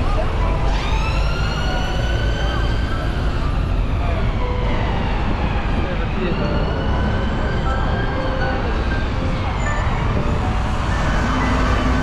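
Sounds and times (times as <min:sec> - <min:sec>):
city road traffic rumble: 0:00.0 - 0:12.0.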